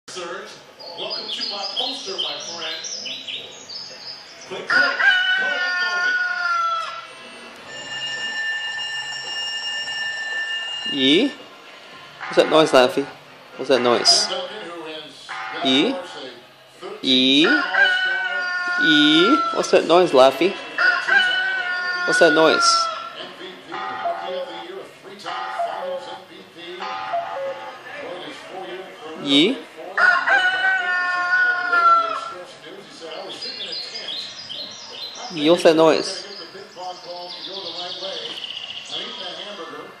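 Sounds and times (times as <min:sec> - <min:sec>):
recorded rooster crow: 0:04.5 - 0:07.3, 0:17.4 - 0:19.8, 0:20.6 - 0:24.4, 0:29.9 - 0:32.4.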